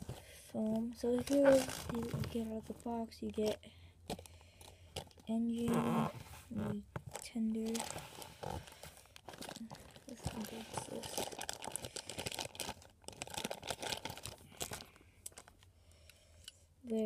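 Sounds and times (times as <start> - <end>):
plastic bag crinkling: 1.0 - 5.8, 7.0 - 15.7.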